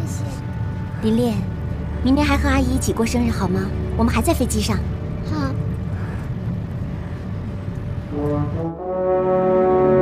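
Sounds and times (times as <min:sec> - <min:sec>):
jet airliner cabin rumble: 0:00.0 - 0:08.7.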